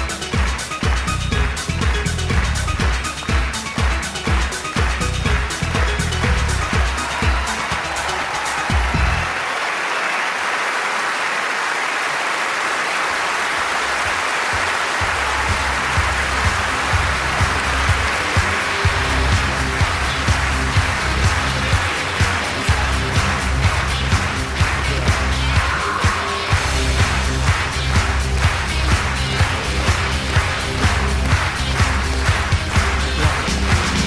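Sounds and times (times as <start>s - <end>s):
music with steady beat: 0.0s - 9.4s, 14.1s - 34.0s
audience applauding: 0.0s - 34.0s.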